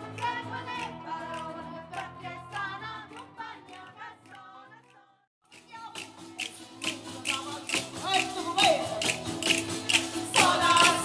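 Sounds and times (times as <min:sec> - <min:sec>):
acoustic guitar: 0:00.0 - 0:11.0
mandolin: 0:05.6 - 0:11.0
person singing: 0:05.7 - 0:11.0.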